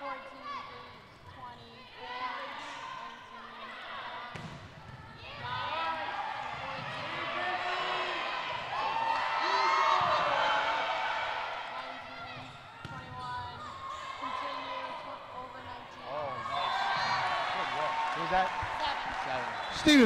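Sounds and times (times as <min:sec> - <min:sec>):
players calling: 0:05.2 - 0:20.0.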